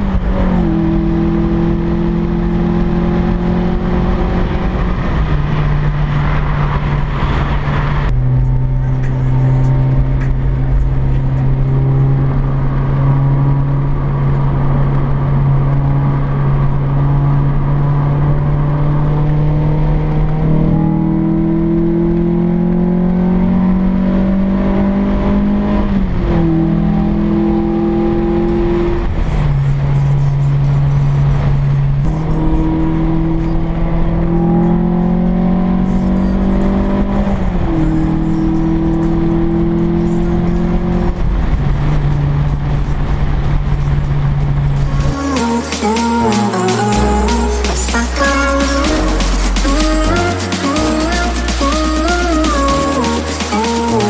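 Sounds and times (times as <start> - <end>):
car engine revving from inside cabin: 0.0 - 7.2.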